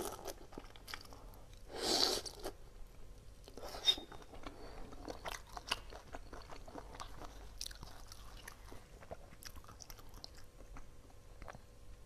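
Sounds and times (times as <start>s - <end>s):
wet crackly chewing: 4.2s - 11.7s.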